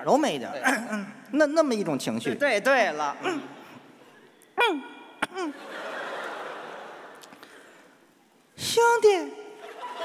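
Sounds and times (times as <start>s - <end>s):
audience laughing: 5.5s - 7.6s, 9.6s - 10.0s.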